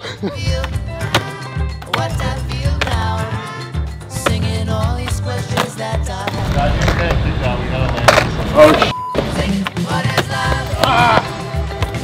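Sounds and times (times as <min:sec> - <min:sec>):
background music with singing: 0:00.0 - 0:07.4, 0:08.1 - 0:12.0
skateboard clacking: 0:00.6 - 0:03.0, 0:05.0 - 0:08.9
skateboard wheels rolling: 0:06.3 - 0:10.7
sharp skateboard impact: 0:07.9 - 0:08.9.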